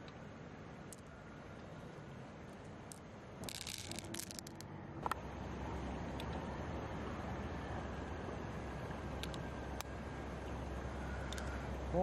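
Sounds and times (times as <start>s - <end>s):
pearls clicking and rattling: 2.5s - 4.7s, 11.2s - 11.6s.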